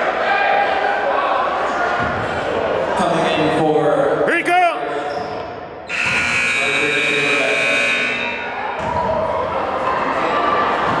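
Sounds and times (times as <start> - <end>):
crowd voices: 0.0 - 11.0
scoreboard buzzer: 5.9 - 8.6.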